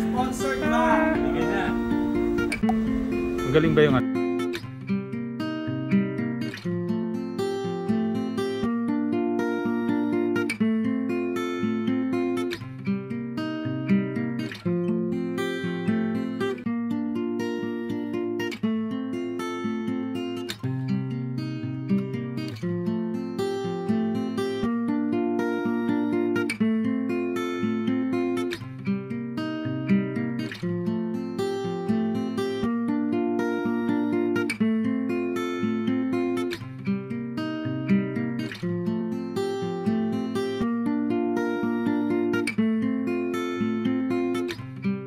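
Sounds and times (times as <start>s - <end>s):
acoustic guitar strumming chords: 0.0s - 45.0s.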